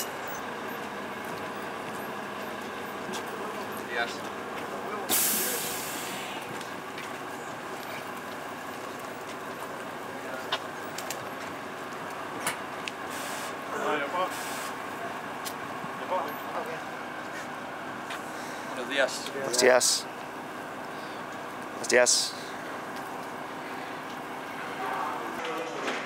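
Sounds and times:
bus engine idling: 0.0s - 26.0s
faint voices: 2.8s - 12.3s, 20.8s - 26.0s
air hiss: 5.1s - 6.4s, 13.1s - 13.6s, 14.3s - 14.8s.

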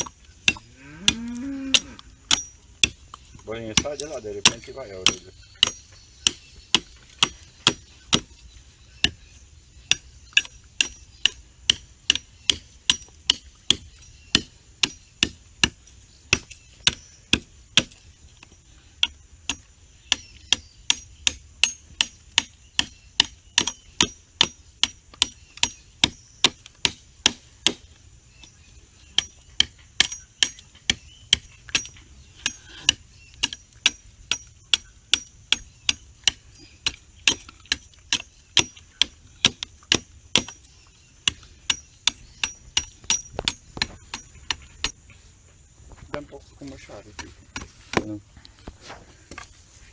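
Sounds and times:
machete chopping wood: 0.0s - 8.4s, 9.0s - 28.5s, 29.1s - 45.0s.

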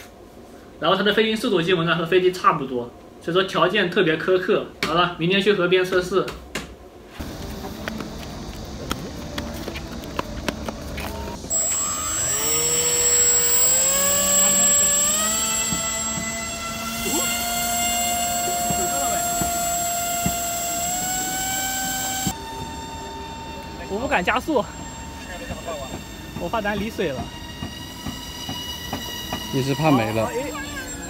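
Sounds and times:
electric motor and propeller whine: 7.1s - 31.0s.

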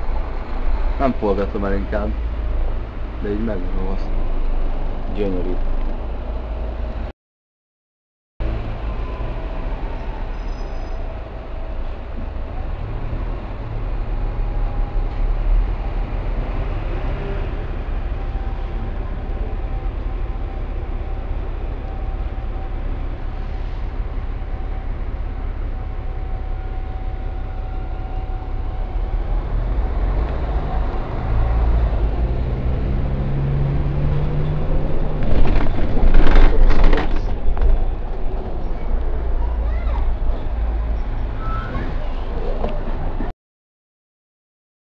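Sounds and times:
bus engine rumbling: 0.0s - 7.1s, 8.4s - 43.3s
faint engine whine: 8.5s - 43.3s.

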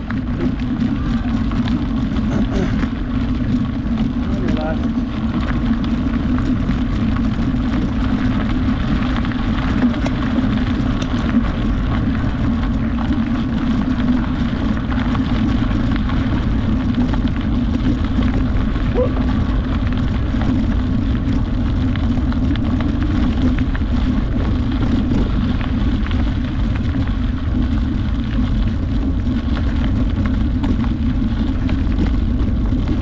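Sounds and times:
constant low hum: 0.0s - 33.0s
tyres rolling over gravel: 0.0s - 33.0s
wind rumble on microphone: 0.0s - 33.0s.

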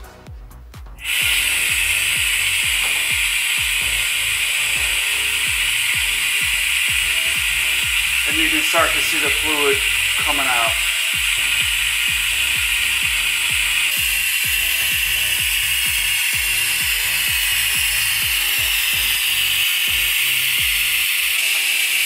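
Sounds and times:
background music with beat: 0.0s - 22.0s
pneumatic bleeder hissing: 1.0s - 22.0s.

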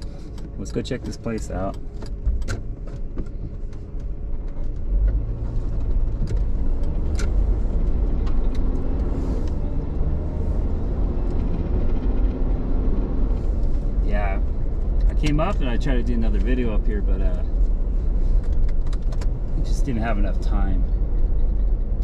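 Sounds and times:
engine and tyre rumble: 0.0s - 22.0s.

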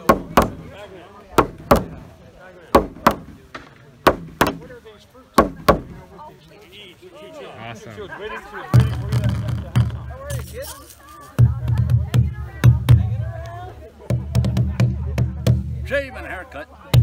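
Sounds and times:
voices chattering: 0.0s - 17.0s
hand drums booming: 8.8s - 10.2s, 11.4s - 13.3s, 14.1s - 15.9s.

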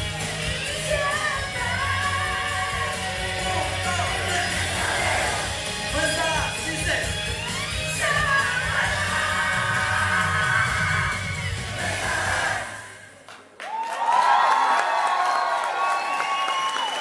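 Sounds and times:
live band and singer: 0.0s - 13.0s
audience cheering and screaming: 7.3s - 12.8s, 13.6s - 17.0s.

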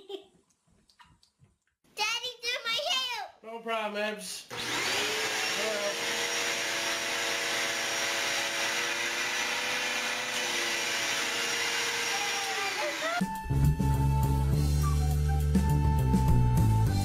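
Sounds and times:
vacuum cleaner motor whine: 4.5s - 13.2s.

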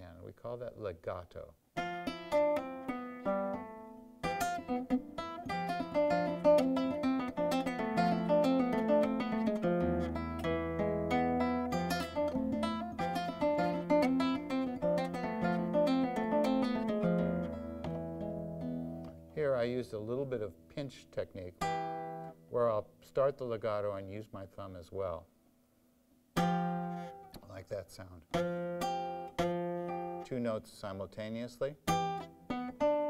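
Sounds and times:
flamenco guitar: 1.8s - 19.4s, 21.6s - 22.5s, 26.3s - 27.6s, 28.3s - 30.3s, 31.8s - 33.0s.

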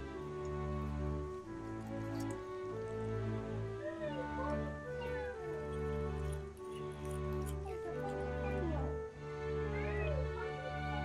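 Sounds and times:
soft held chords music: 0.0s - 11.0s.

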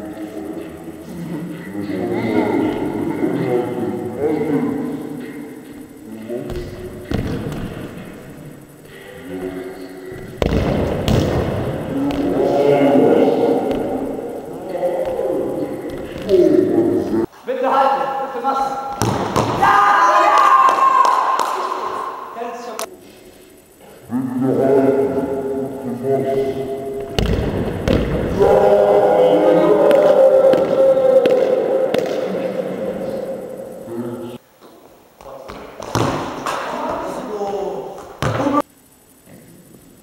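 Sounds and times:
football bouncing in sports hall: 2.6s - 3.2s, 6.4s - 9.0s, 10.1s - 17.2s, 18.6s - 22.2s, 27.0s - 33.2s, 35.2s - 38.6s
voices shouting: 11.6s - 22.8s, 24.1s - 34.4s
young voices shouting in a hall: 19.4s - 22.4s.

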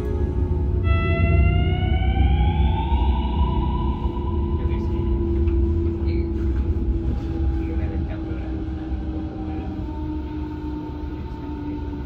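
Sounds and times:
low running rumble: 0.0s - 12.0s.

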